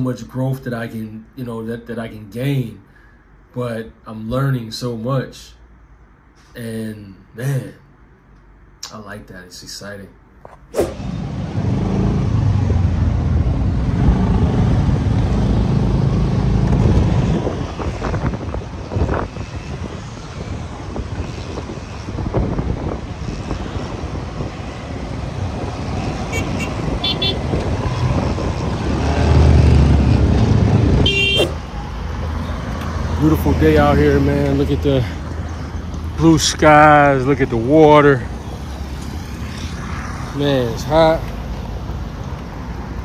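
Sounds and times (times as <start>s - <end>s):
road noise: 0.0s - 43.0s
vehicle horn toots: 26.3s - 27.5s, 31.0s - 31.6s.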